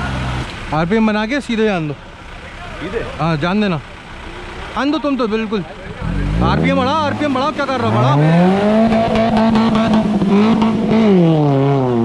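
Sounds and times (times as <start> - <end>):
car engine revving: 3.8 - 12.0.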